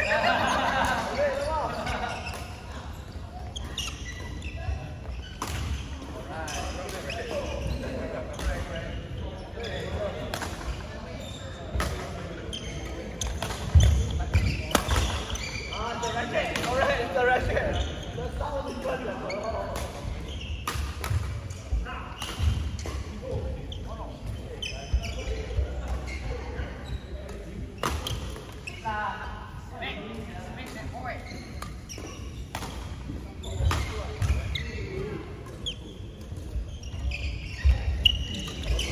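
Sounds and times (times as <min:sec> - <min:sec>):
voices in hall: 0:00.0 - 0:38.9.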